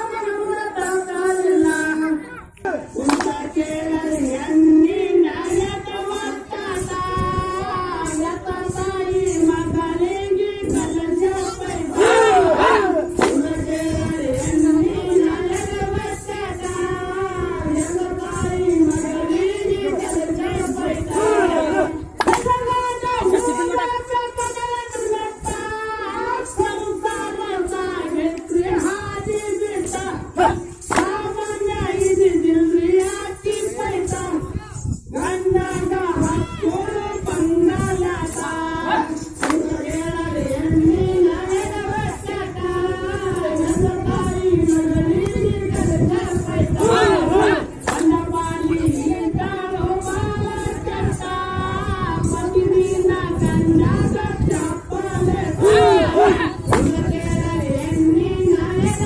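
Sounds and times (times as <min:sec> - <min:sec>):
folk song: 0:00.0 - 0:59.0
group chanting loudly: 0:11.4 - 0:13.8, 0:19.0 - 0:24.1, 0:30.0 - 0:31.2, 0:38.5 - 0:40.0, 0:46.2 - 0:49.3, 0:55.0 - 0:57.8
group shouting calls: 0:11.7 - 0:13.4, 0:21.1 - 0:22.4, 0:30.4 - 0:30.7, 0:46.8 - 0:47.7, 0:55.6 - 0:56.5.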